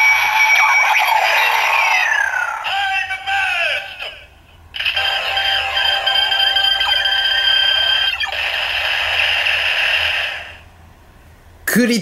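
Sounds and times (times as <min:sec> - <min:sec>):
toy belt electronic beeping tones: 0:04.8 - 0:08.7
electronic music backing: 0:05.0 - 0:08.4.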